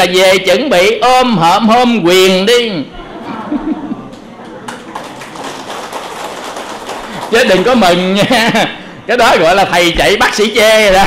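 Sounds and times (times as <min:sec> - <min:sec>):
audience applauding: 0:04.1 - 0:08.0.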